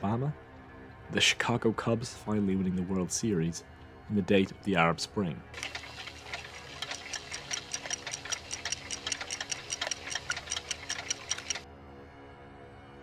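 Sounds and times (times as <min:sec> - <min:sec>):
fast mechanical ticking: 0:05.6 - 0:11.6.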